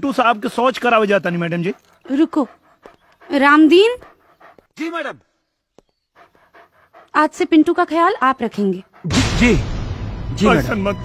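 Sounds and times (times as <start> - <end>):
dog panting: 0.2 - 5.0, 5.8 - 9.1
man speaking: 9.0 - 9.7, 10.3 - 11.0.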